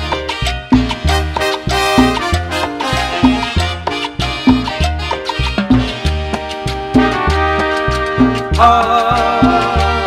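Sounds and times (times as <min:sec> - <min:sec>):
latin dance orchestra playing: 0:00.0 - 0:10.0.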